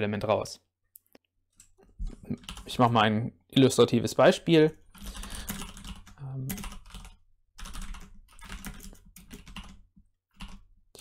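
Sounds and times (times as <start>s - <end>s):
typing on computer keyboard: 4.9s - 10.7s.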